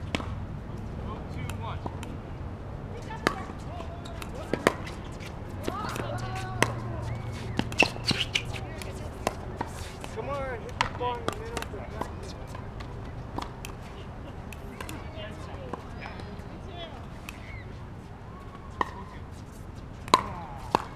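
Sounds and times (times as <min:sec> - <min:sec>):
faint voices: 0:02.8 - 0:20.9
paddles hitting plastic ball: 0:05.6 - 0:12.6, 0:20.0 - 0:20.9.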